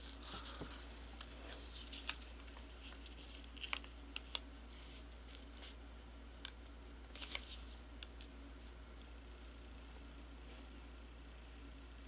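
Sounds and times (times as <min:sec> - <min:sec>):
paper rustling: 0:00.0 - 0:08.8.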